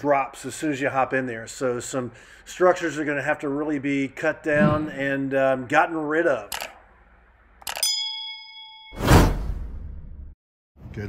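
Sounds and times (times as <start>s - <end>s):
bright bell ding: 7.7s - 9.3s.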